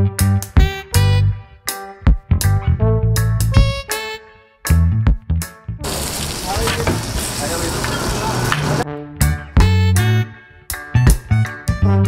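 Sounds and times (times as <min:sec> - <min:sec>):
fish sizzling on a griddle: 0:05.8 - 0:08.8.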